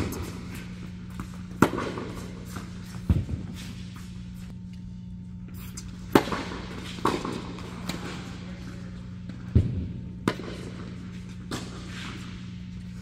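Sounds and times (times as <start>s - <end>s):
tennis ball struck by rackets: 0.0s - 3.7s, 6.0s - 8.1s, 9.5s - 10.8s
steady low hum: 0.0s - 13.0s.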